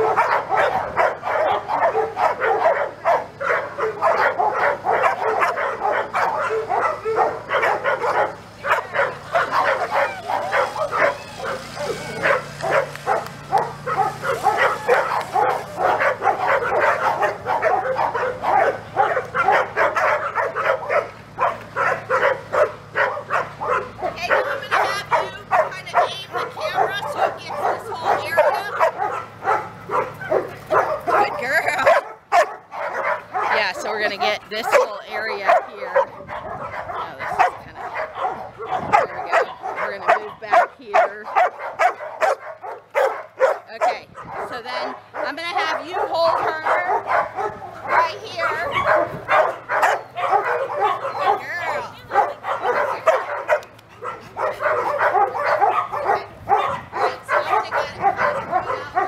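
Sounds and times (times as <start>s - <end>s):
dogs barking rapidly: 0.0s - 59.0s.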